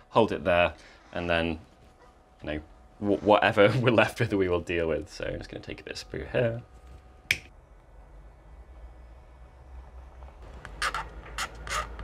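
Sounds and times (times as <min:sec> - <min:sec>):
metal tool scraping plastic: 0:10.6 - 0:12.0.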